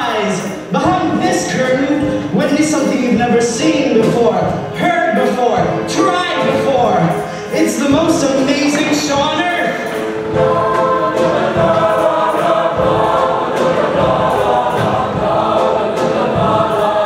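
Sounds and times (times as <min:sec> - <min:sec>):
accompaniment with steady beat: 0:00.0 - 0:17.0
choir singing held chords: 0:06.4 - 0:17.0.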